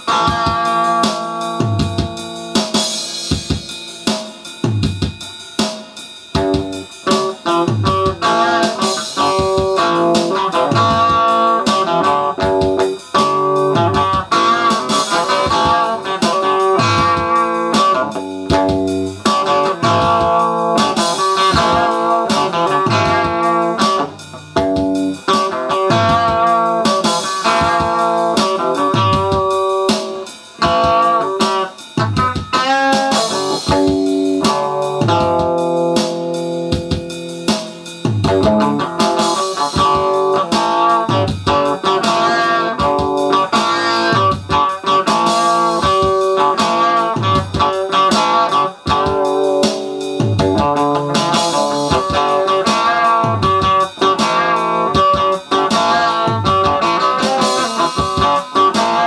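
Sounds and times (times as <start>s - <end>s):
electric guitar rock part: 0.0s - 59.0s
steady drum beat: 0.0s - 59.0s.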